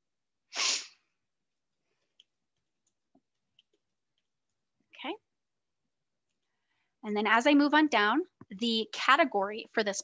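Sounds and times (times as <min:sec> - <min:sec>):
sharp burst of breath: 0:00.5 - 0:01.1.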